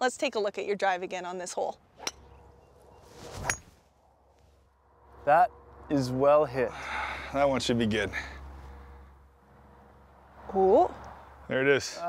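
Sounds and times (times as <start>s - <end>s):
golf club swishing: 3.0s - 3.8s.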